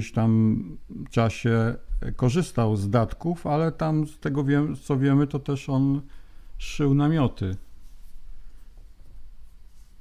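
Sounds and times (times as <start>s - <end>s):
low steady hum: 0.0s - 10.0s
faint rustling: 7.4s - 10.0s.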